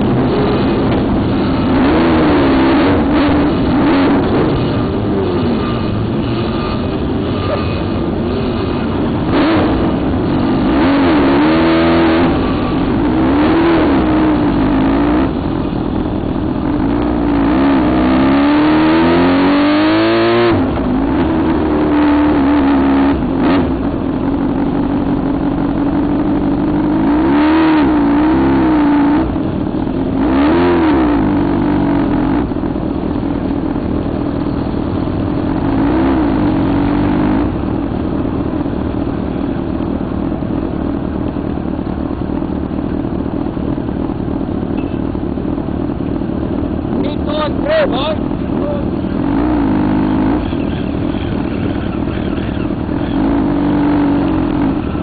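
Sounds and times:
motorcycle engines revving: 0.0 - 55.0.

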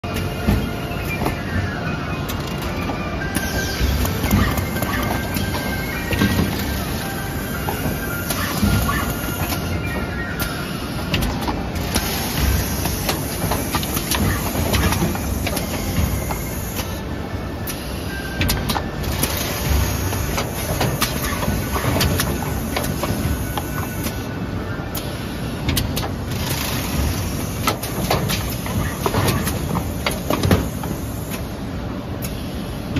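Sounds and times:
background music: 0.0 - 27.6
box assembly machine running: 0.0 - 32.9.

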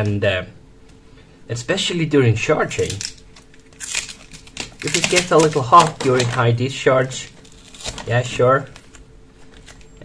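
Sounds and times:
tape peeling crackling rip: 2.8 - 6.4, 7.4 - 8.1.

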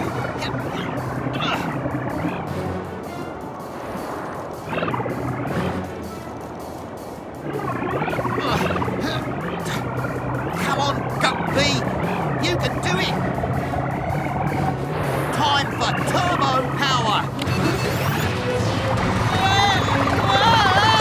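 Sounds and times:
cartoon background music: 0.0 - 21.0
wavering warbling tones: 0.0 - 21.0
low engine hum: 7.6 - 17.8.

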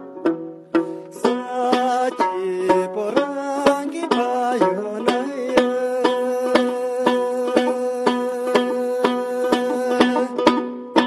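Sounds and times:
lute strummed: 0.0 - 11.0.

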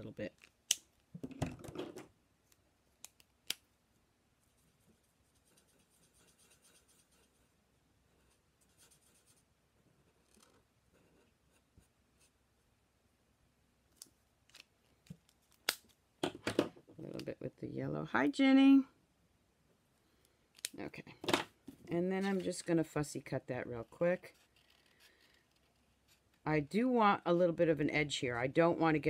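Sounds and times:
marker scratching on card: 5.3 - 7.4, 8.2 - 9.4.

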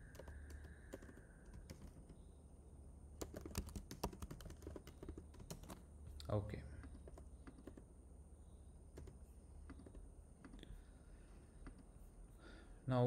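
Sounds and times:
keyboard typing: 0.0 - 2.3, 3.2 - 5.9, 6.8 - 7.9, 8.9 - 10.6.

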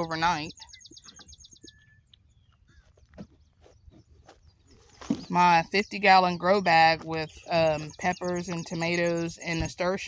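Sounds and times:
bird trilling and chirping: 0.0 - 10.0.

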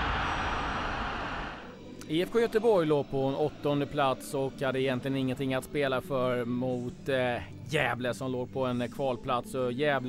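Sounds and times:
rushing noise: 0.0 - 1.7.

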